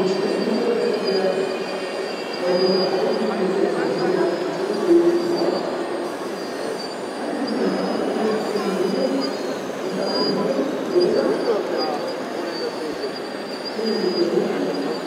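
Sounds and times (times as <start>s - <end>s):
model excavator motors whining: 0.0s - 15.0s
thin high whine: 0.0s - 15.0s.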